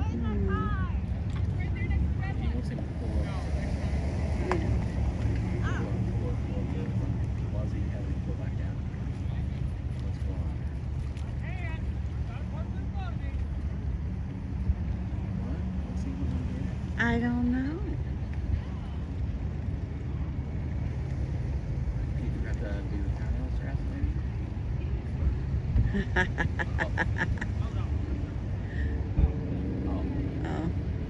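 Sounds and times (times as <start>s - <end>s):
faint voices: 0.0s - 31.0s
truck engine rumble: 0.0s - 31.0s.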